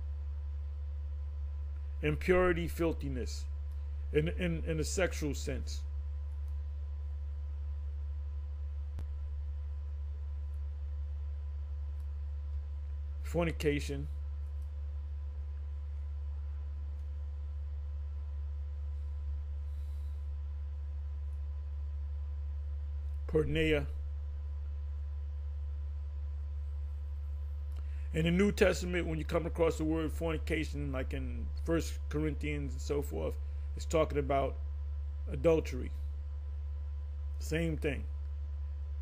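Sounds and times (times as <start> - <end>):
low hum: 0.0 - 39.0.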